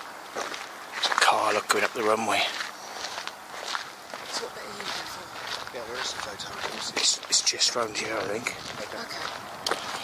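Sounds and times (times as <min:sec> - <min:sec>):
footsteps on concrete: 0:00.3 - 0:10.0
quiet voices talking: 0:00.9 - 0:10.0.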